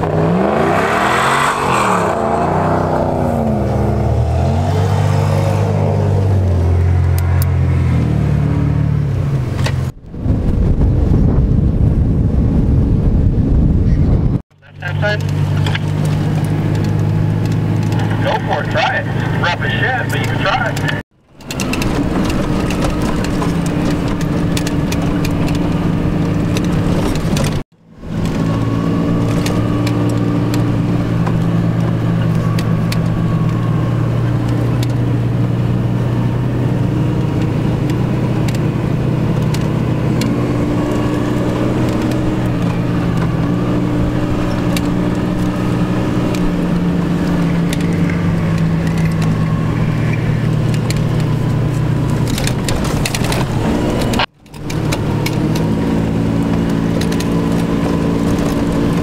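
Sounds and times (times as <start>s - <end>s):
vehicle engine running steadily: 2.4s - 59.0s.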